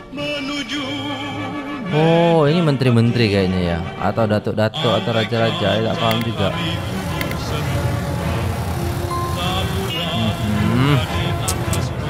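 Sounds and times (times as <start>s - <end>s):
music: 0.0s - 12.0s
low engine rumble: 6.1s - 12.0s.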